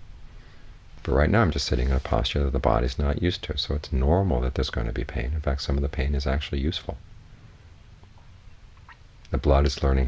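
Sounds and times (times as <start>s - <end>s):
faint hiss: 0.0s - 10.0s
low steady hum: 0.0s - 10.0s.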